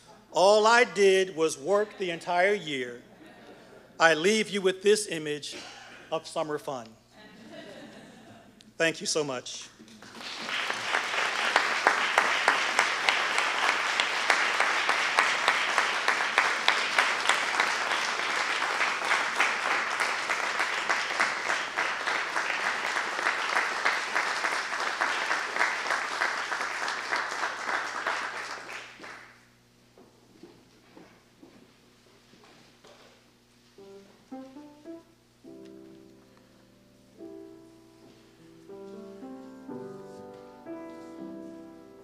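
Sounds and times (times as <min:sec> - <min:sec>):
audience applauding: 0:10.0 - 0:29.4.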